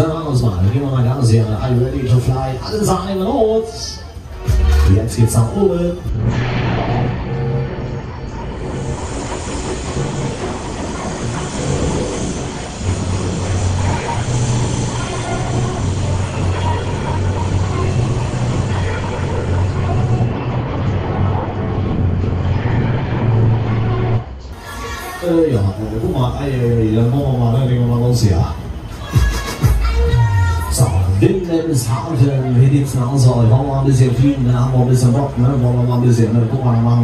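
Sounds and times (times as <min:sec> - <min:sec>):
fairground ride running: 0:00.0 - 0:37.0
loud music with heavy bass: 0:04.2 - 0:09.2, 0:12.4 - 0:25.1, 0:28.9 - 0:31.5
broad rushing hiss: 0:08.3 - 0:20.2.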